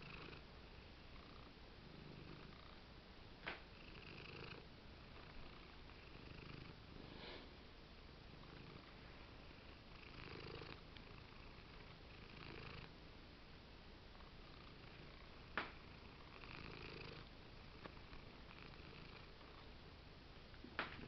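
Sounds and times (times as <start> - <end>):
cat purring: 0.0 - 2.8, 3.7 - 7.4, 8.3 - 13.0, 14.1 - 19.8.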